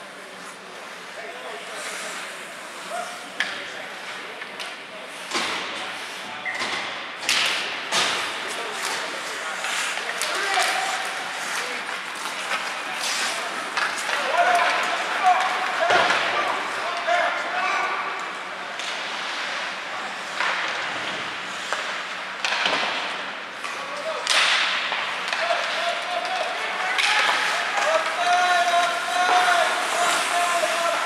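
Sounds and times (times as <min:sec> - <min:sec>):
hockey sticks and puck clacking: 0:01.8 - 0:05.8, 0:06.5 - 0:31.0
skate blades scraping on ice: 0:08.3 - 0:15.8, 0:25.1 - 0:31.0
players calling out: 0:25.3 - 0:31.0.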